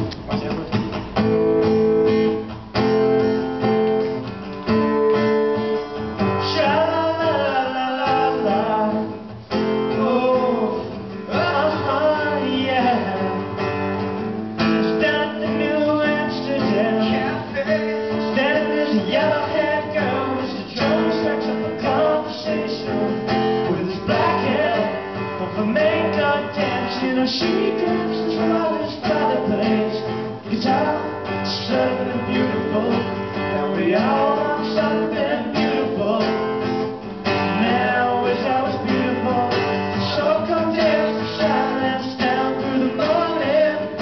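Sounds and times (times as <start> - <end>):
acoustic guitar strumming chords: 0.0 - 44.0
man singing: 6.3 - 13.6, 14.7 - 44.0.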